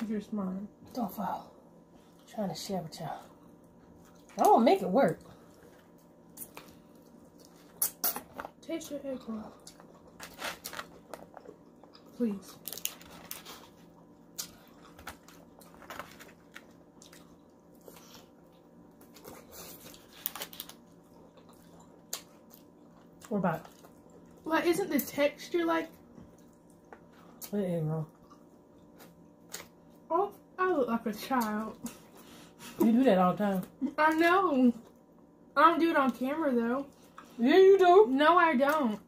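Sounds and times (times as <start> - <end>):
person chewing noodles: 5.3 - 8.4, 9.5 - 24.5, 26.1 - 27.5, 28.1 - 30.0.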